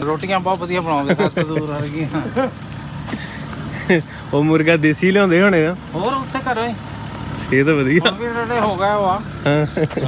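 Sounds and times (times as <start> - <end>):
people talking: 0.0 - 2.6, 3.8 - 10.0
road vehicle running: 0.0 - 10.0.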